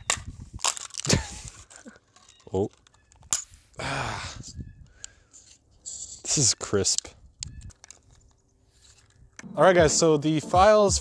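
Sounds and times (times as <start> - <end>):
plastic parts clicking: 0.0 - 3.5, 6.8 - 9.4.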